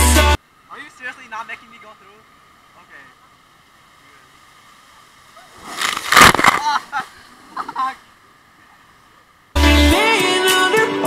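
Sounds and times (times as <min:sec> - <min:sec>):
loud splashing: 0:05.5 - 0:07.2.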